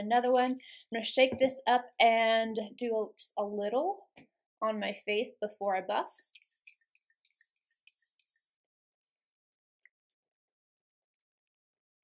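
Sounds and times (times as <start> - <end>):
mist spray bottle hissing: 6.1 - 8.6.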